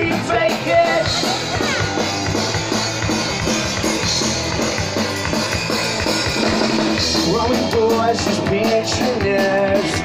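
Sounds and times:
drum hits: 0.0 - 10.0
rock band playing live: 0.0 - 10.0.

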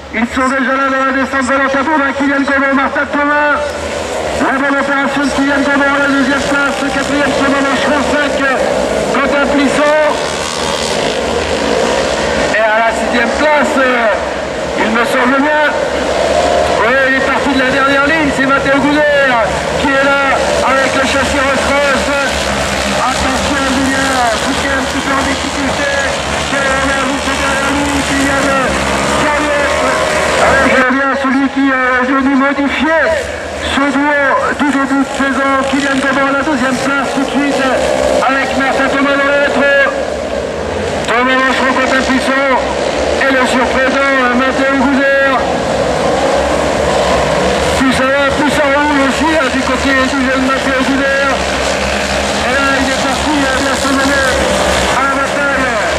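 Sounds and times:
commentator over loudspeaker: 0.0 - 55.9
race car engines droning: 0.0 - 55.9.

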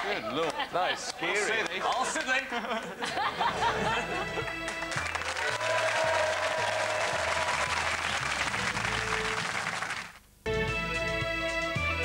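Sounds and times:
music: 3.4 - 12.0
upbeat music with bass line: 3.6 - 5.6, 7.0 - 9.8, 10.5 - 12.0
studio audience applause: 4.4 - 10.2.

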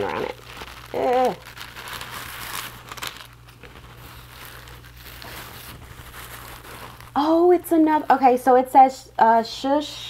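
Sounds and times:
straw hat rustling and crinkling: 0.0 - 8.8.

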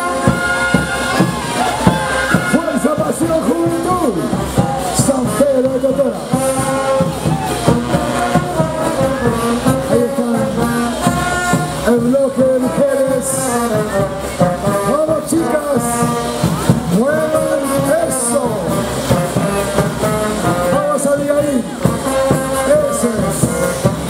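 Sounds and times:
brass band playing dance tune: 0.0 - 24.0.

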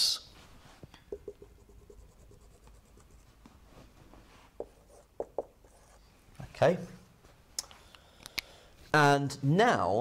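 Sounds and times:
marker tapping on whiteboard: 1.1 - 2.0, 4.6 - 5.8.

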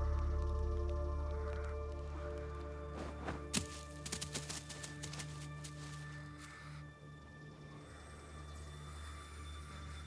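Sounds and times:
dark film score drone: 0.0 - 10.0.

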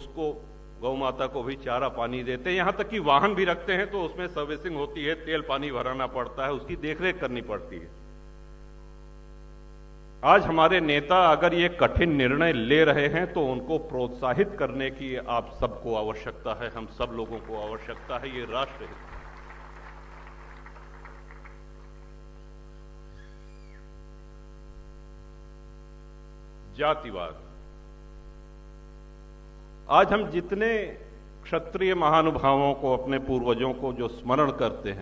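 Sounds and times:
electrical mains hum: 0.0 - 35.0.

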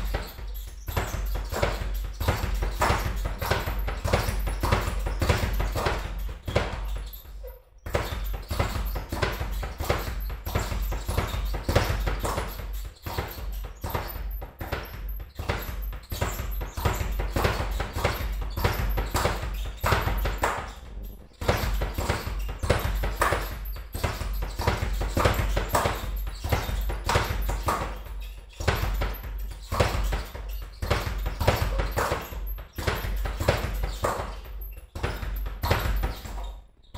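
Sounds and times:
speed bag rattling: 0.0 - 36.6.

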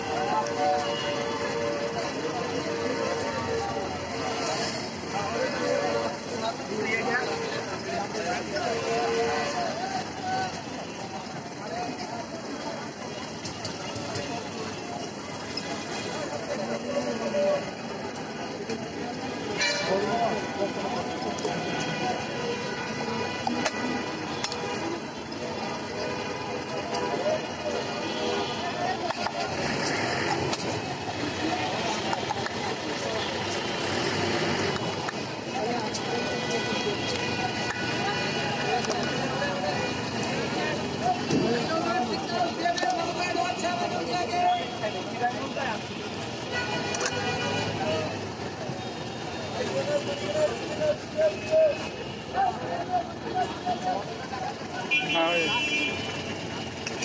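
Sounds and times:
busy street noise: 0.0 - 57.0
people talking: 0.0 - 57.0.

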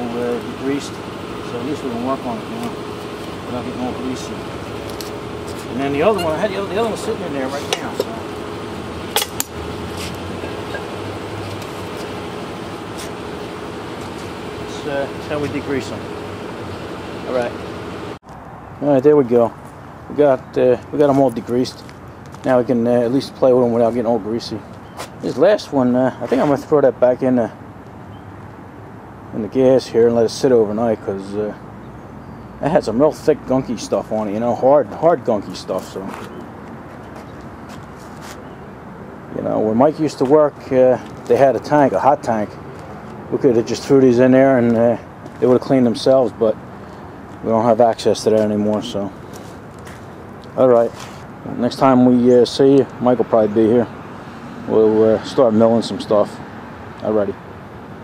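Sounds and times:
steady mechanical hum: 0.0 - 18.2
outdoor background noise: 0.0 - 58.0.

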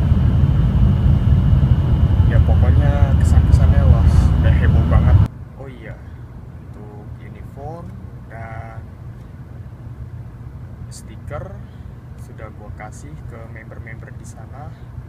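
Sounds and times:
train rumble inside carriage: 0.0 - 5.3
person speaking: 2.3 - 6.1.

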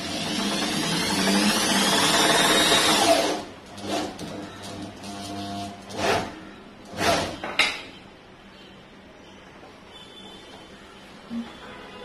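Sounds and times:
electric drill boring into wood: 0.0 - 3.5.

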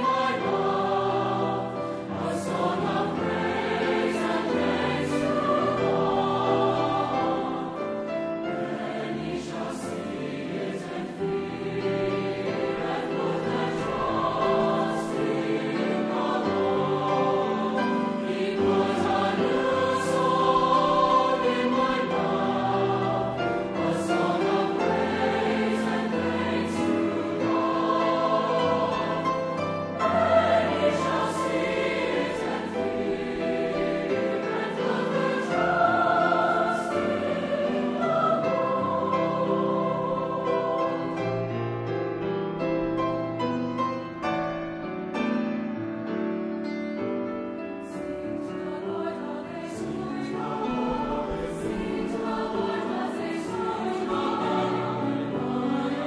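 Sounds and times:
mixed choir singing: 0.0 - 43.5, 47.8 - 56.0.

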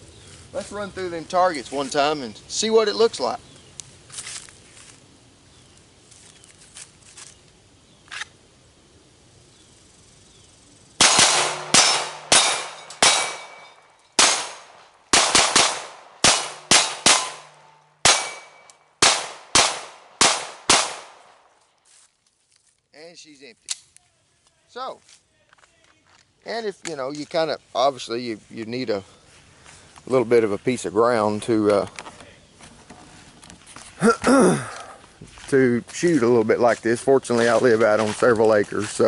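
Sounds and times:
steel plates ringing: 11.0 - 14.5, 16.3 - 18.8
pistol shots: 11.0 - 21.5.

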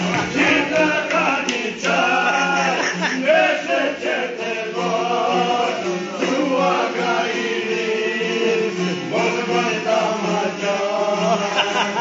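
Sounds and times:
men singing folk song: 0.0 - 12.0.

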